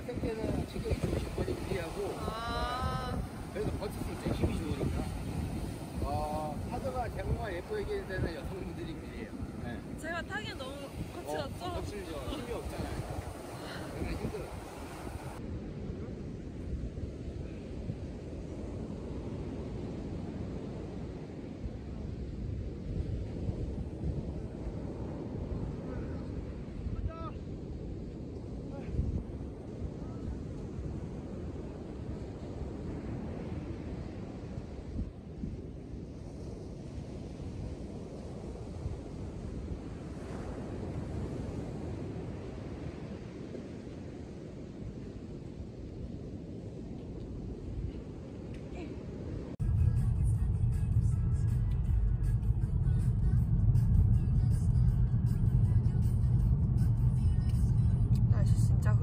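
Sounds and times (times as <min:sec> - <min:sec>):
surf breaking on a sand beach: 0:00.0 - 0:49.6
wind rumbling on microphone: 0:00.0 - 0:59.0.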